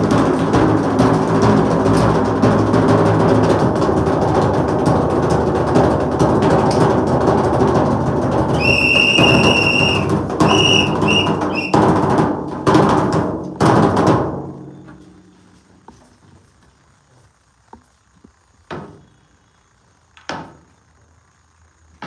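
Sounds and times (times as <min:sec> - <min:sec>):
heavy drum strokes: 0:00.0 - 0:14.6
rapid drumming: 0:00.0 - 0:14.6
high held note: 0:08.6 - 0:11.8
short high notes: 0:08.6 - 0:11.8.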